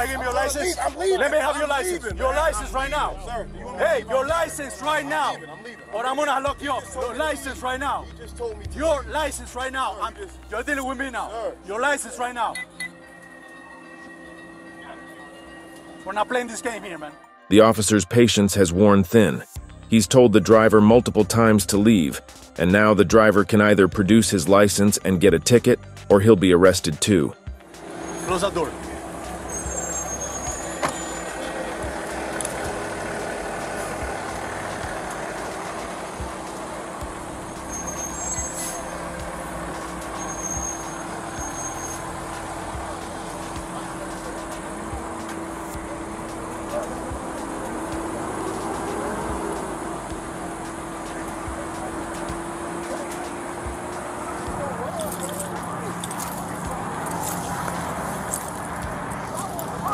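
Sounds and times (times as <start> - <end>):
highway traffic hum: 0.0 - 17.8, 18.4 - 59.9.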